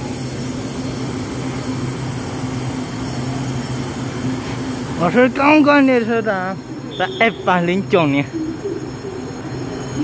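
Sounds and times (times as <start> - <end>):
electric train humming: 0.0 - 10.0.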